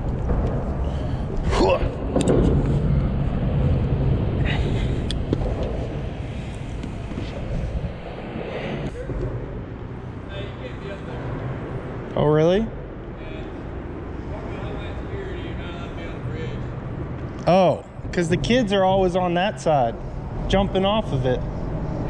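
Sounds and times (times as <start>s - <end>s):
wind noise on microphone: 0.0s - 9.1s
low rumble of road traffic: 0.0s - 22.0s.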